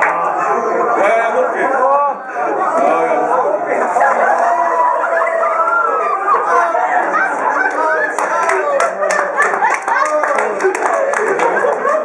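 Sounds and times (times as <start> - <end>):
people squealing: 3.8 - 8.1
stifled laughter: 9.0 - 12.0.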